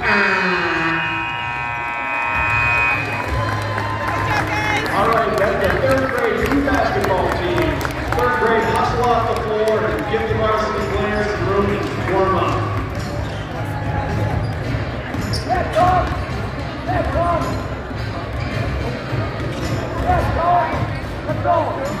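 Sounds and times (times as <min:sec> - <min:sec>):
echoing din of voices: 0:00.0 - 0:22.0.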